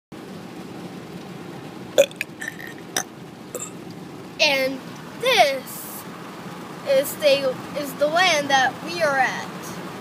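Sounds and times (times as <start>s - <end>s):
boy burping: 2.0s - 3.8s.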